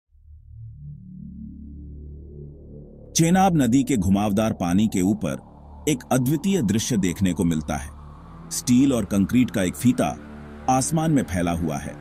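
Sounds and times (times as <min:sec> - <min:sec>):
ambient music with deep drone: 0:00.2 - 0:12.0.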